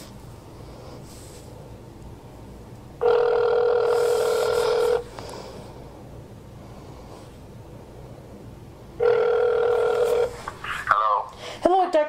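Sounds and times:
telephone ringback tone: 3.0 - 5.1, 9.0 - 10.4.

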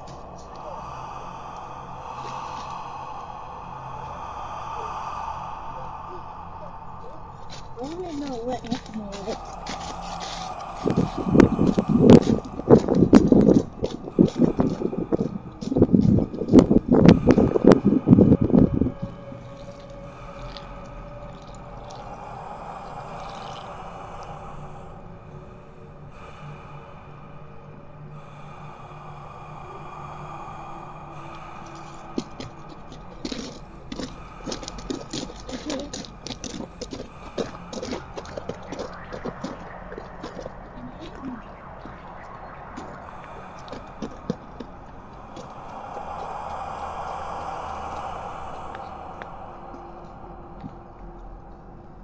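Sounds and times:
footsteps crunching on gravel: 7.8 - 16.7, 32.3 - 42.0.

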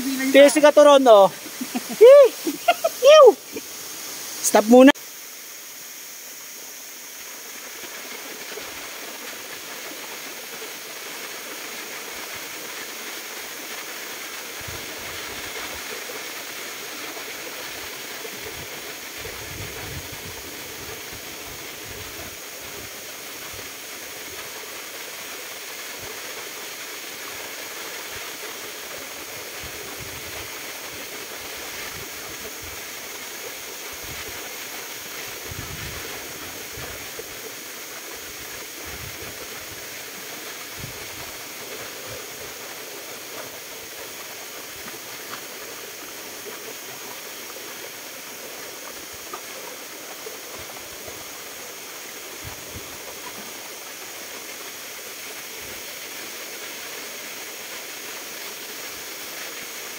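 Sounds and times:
waterfall rushing: 0.0 - 59.9.

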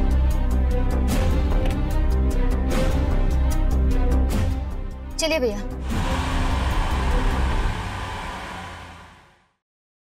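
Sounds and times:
car driving past: 5.8 - 9.6.

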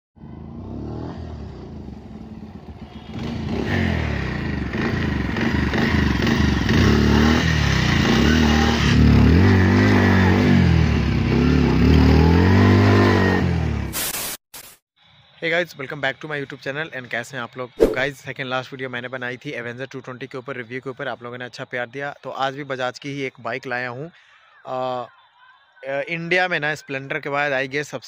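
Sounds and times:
motorcycle engine revving: 0.2 - 13.9.

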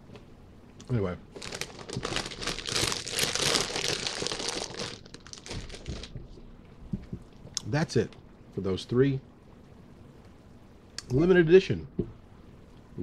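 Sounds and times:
foil chip bag crinkling: 1.3 - 6.2.

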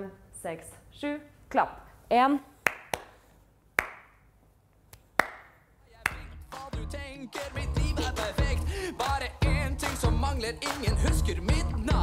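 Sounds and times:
woman clapping hands with echo: 3.8 - 4.1.

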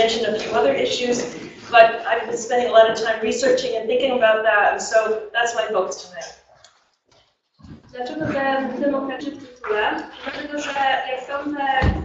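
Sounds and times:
woman speaking: 0.0 - 6.3, 7.9 - 12.0
person speaking: 7.6 - 11.9.

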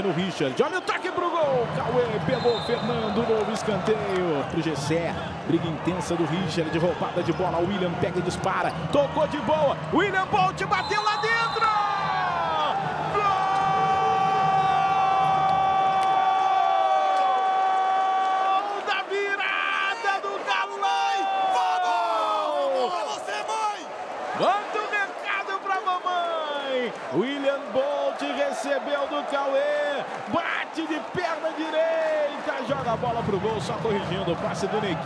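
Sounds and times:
crowd noise: 0.0 - 35.0.

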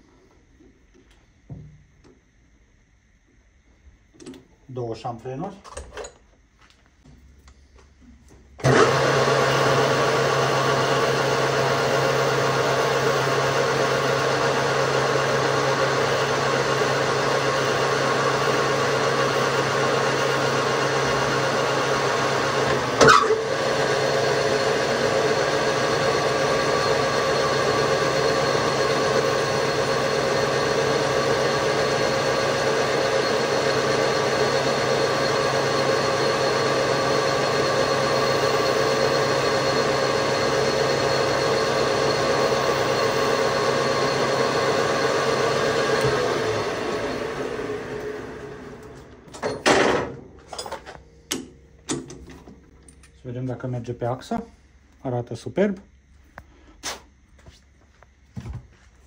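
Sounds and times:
metal lathe running: 8.6 - 52.4.

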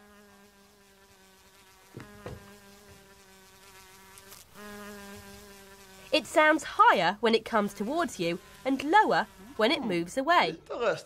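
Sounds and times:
housefly buzzing: 0.0 - 10.7.

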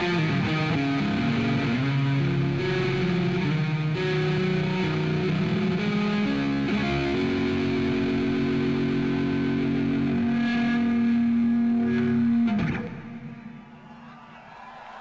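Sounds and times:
electric guitar sustained notes: 0.0 - 13.8.

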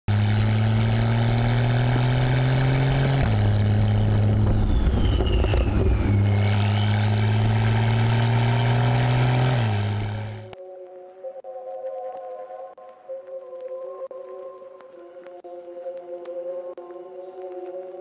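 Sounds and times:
car engine accelerating: 0.1 - 10.6
whistling tone: 3.8 - 8.3.

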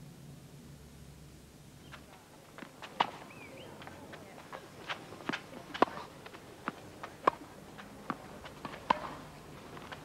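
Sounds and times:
footsteps on tennis court: 1.9 - 10.0
tennis ball bouncing: 2.6 - 3.2, 4.5 - 10.0
racket hitting tennis ball: 2.8 - 3.2, 4.8 - 10.0.

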